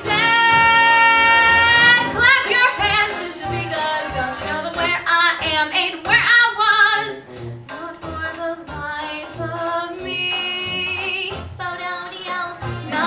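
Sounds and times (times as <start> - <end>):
woman belting a show tune: 0.0 - 13.0.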